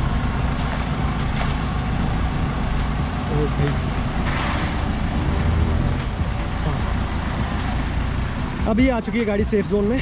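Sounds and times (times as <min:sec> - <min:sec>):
car engine running low revs: 0:00.0 - 0:10.0.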